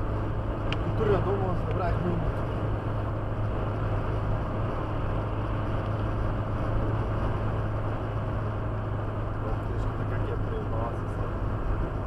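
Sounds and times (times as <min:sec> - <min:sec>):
car cabin drone with road noise: 0:00.0 - 0:12.0.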